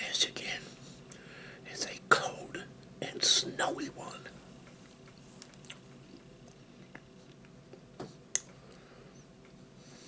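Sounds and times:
man whispering: 0.0 - 0.8, 1.6 - 4.4.

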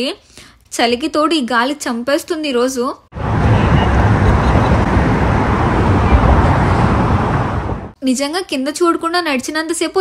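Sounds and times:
road traffic rumble: 3.1 - 8.0.

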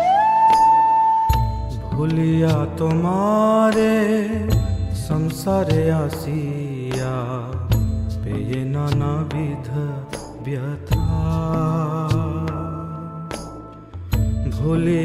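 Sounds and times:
sharp percussion strikes: 1.3 - 15.0
person singing devotional song: 1.9 - 15.0.

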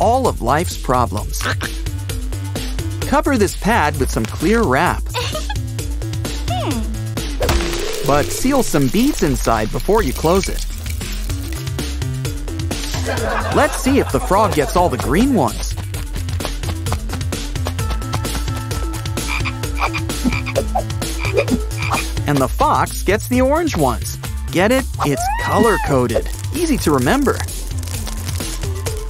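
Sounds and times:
background music with held notes: 0.0 - 29.0
cartoon frog croaks: 1.4 - 1.8, 19.2 - 22.2.

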